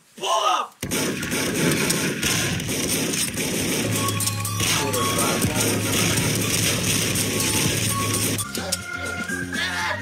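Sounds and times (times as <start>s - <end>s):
dense crackling noise: 0.8s - 8.4s.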